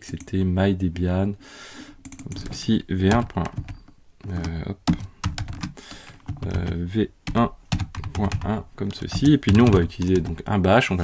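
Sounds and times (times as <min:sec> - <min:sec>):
keyboard keystrokes: 0:02.0 - 0:10.4.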